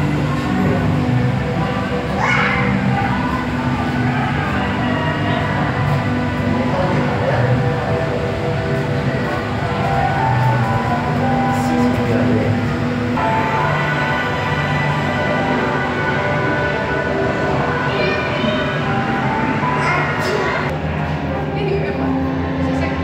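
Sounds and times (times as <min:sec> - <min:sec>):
sustained droning chords: 0:00.0 - 0:23.0.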